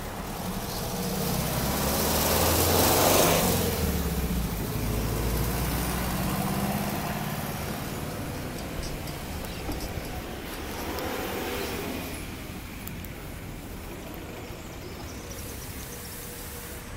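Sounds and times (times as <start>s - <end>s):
low engine hum: 0.0s - 16.2s
vehicle passing by: 0.0s - 16.9s.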